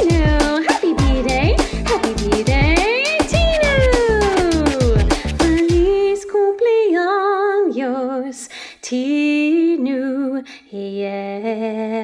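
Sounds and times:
upbeat novelty song with drum beat: 0.0 - 6.0.

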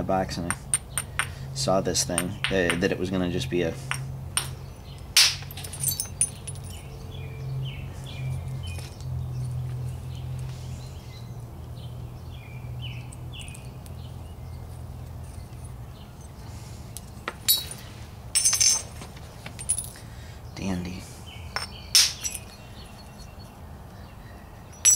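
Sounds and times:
light stone taps: 2.1 - 3.0, 3.8 - 4.6, 21.6 - 22.6
stone striking stone: 2.2 - 2.9, 3.9 - 4.6, 21.6 - 22.5.

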